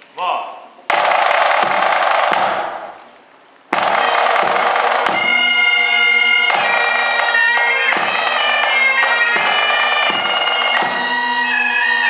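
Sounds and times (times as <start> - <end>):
snare drum rolls: 0.9 - 3.1, 3.7 - 5.4, 6.5 - 11.1.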